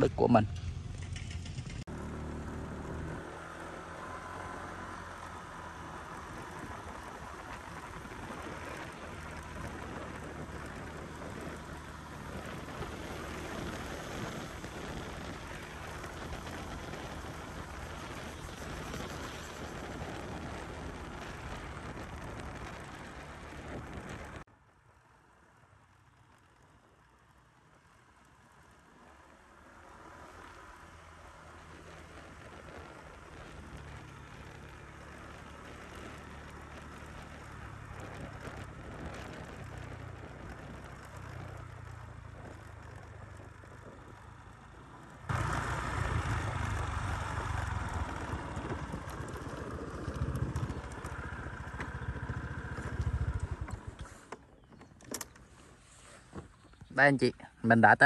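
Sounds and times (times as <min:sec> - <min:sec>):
motorbike engine riding: 0:00.0 - 0:24.5, 0:25.2 - 0:58.0.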